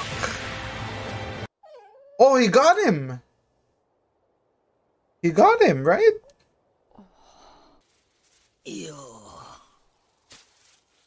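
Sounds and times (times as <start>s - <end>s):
person exhaling: 6.9s - 7.8s.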